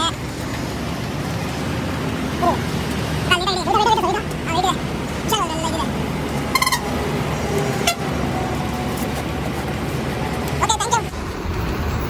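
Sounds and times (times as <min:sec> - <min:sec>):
vehicle rumble from inside: 0:00.0 - 0:12.0
person speaking: 0:02.3 - 0:06.0, 0:10.4 - 0:11.2.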